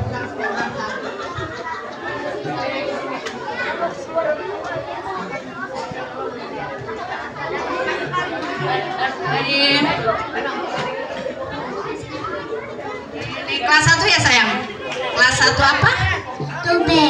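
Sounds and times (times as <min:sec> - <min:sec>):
children chattering: 0:00.0 - 0:17.0.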